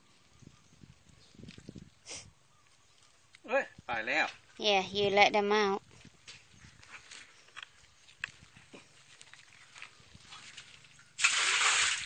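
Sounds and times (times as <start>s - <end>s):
boots splashing through muddy water: 8.0s - 12.0s.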